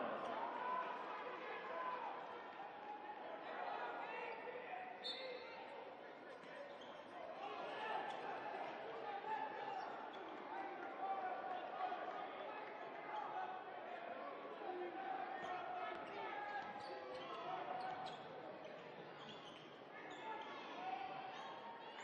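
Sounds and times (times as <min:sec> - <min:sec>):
voices echoing in arena: 0:00.0 - 0:22.0.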